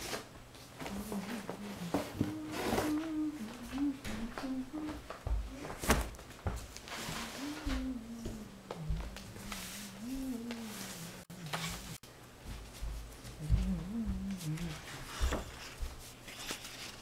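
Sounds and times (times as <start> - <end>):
person humming low: 0.8 - 5.9, 7.0 - 12.0, 13.2 - 15.7.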